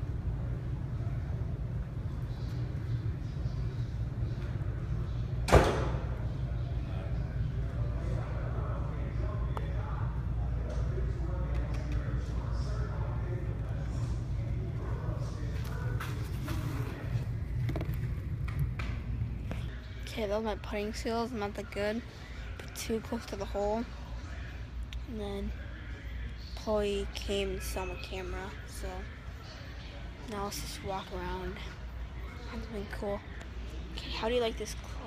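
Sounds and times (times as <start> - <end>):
low rumble of indoor hall: 0.0 - 35.0
faint voices: 6.0 - 18.3.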